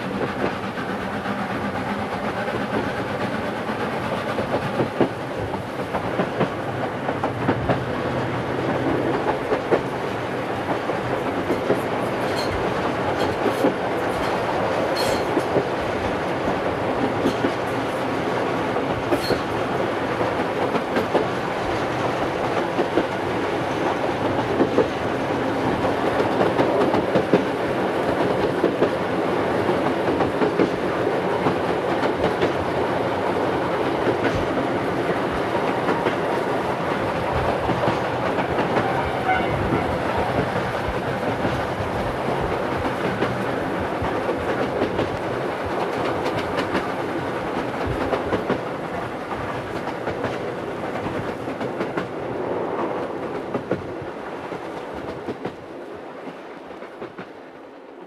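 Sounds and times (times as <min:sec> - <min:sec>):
train wheels clattering on track: 0:00.0 - 0:58.0.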